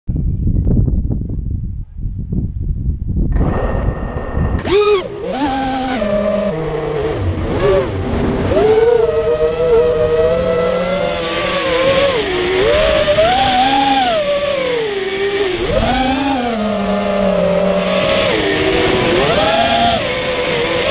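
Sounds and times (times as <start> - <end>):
wind buffeting microphone: 0.1 - 20.9
drone motors whining: 3.3 - 20.9.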